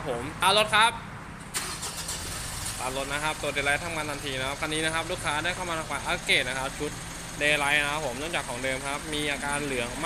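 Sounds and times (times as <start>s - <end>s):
car engine starting and idling: 1.4s - 10.0s.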